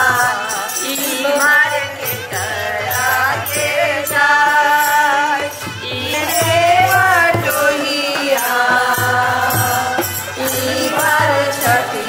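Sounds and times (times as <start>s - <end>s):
women singing folk song: 0.0s - 12.0s
drum beat: 5.9s - 12.0s.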